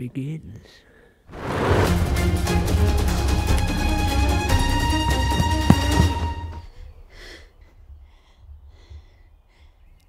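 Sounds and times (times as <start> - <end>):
music: 1.5 - 6.7
woman breathing faintly: 6.6 - 10.0.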